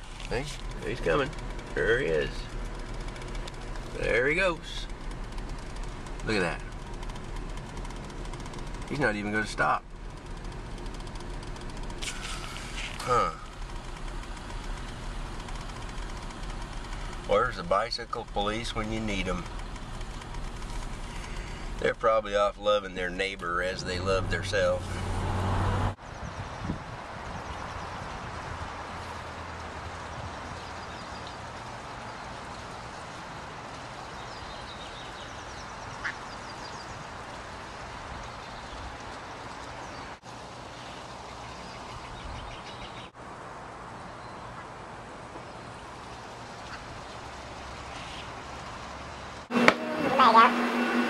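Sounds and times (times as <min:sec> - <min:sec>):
small birds chirping: 0:00.0 - 0:24.8, 0:26.0 - 0:43.2, 0:43.9 - 0:49.5
truck engine idling: 0:00.0 - 0:25.9, 0:27.2 - 0:43.2, 0:45.1 - 0:51.0
traffic noise: 0:00.0 - 0:51.0
brief hiss: 0:12.0 - 0:13.1.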